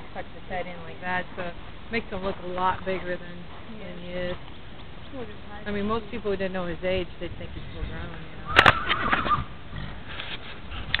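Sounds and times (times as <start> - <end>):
horse whinny: 8.4 - 10.0.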